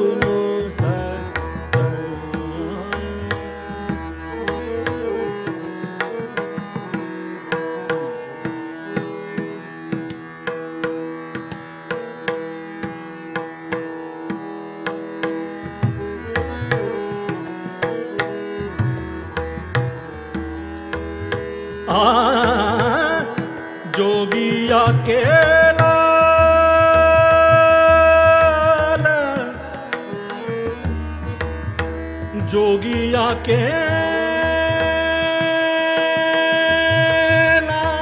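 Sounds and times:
harmonium melody: 0.0s - 38.0s
tabla strokes: 0.2s - 38.0s.

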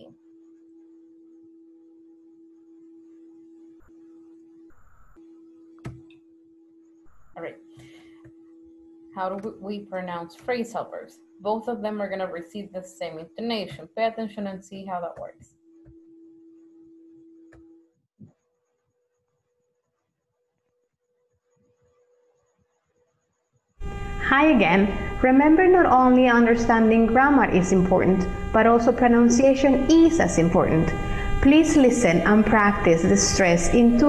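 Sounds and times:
low electronic hum: 0.0s - 17.9s, 23.8s - 34.0s
burst of noise: 26.1s - 34.0s.

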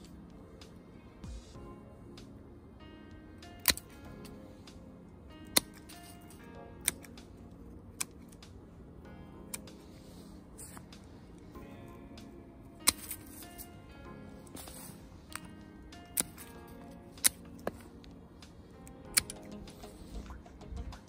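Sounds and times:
quiet background music: 0.0s - 21.0s.

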